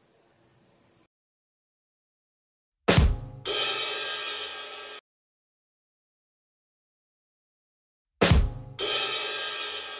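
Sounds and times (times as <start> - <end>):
drum hit with low thump: 2.9 - 3.5, 8.2 - 9.0.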